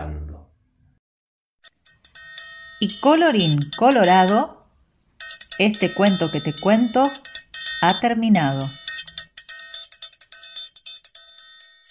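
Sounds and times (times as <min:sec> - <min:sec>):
small metal bells ringing: 0:01.6 - 0:04.6, 0:05.2 - 0:11.9.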